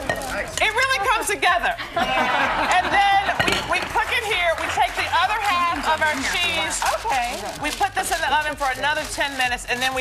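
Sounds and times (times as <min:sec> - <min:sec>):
overlapping speech: 0:00.7 - 0:09.0.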